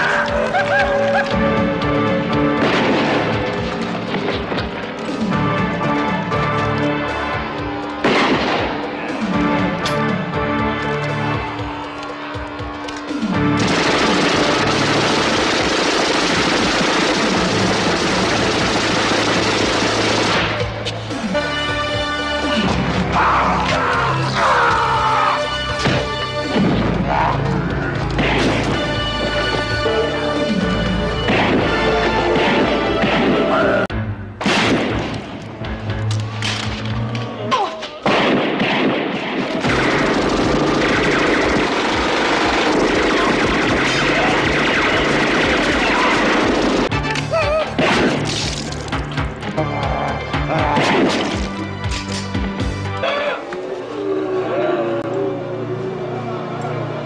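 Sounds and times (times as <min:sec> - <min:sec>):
film score music: 0:00.0 - 0:57.0
rapid gunfire: 0:02.5 - 0:05.1, 0:13.4 - 0:20.8, 0:38.0 - 0:47.0, 0:47.8 - 0:48.4.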